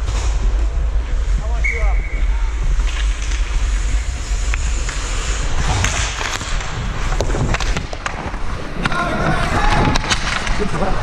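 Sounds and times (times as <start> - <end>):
wind rumble on microphone: 0.0 - 11.0
hockey sticks and puck clacking: 2.8 - 11.0
skates scraping on ice: 2.9 - 11.0.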